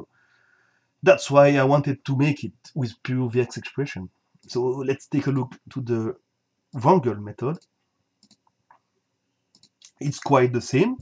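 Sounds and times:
faint computer mouse clicks: 0:08.2 - 0:08.5, 0:09.5 - 0:10.0.

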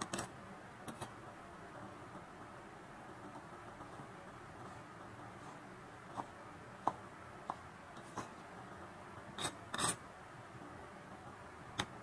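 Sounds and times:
knife scraping cutting board: 0:09.4 - 0:10.0.

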